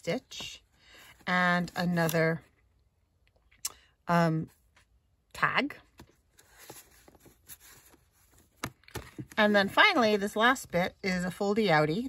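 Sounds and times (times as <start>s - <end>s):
paper and card rustling: 5.9s - 10.6s.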